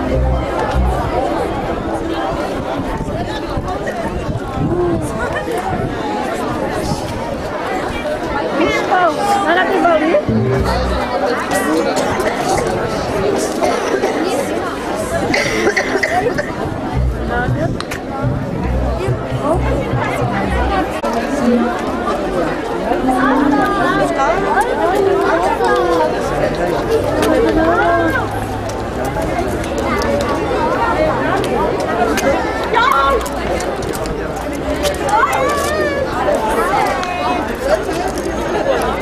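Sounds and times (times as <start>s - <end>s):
music with low notes: 0.0s - 2.6s, 10.2s - 11.6s, 16.8s - 21.9s
crowd talking: 0.0s - 39.0s.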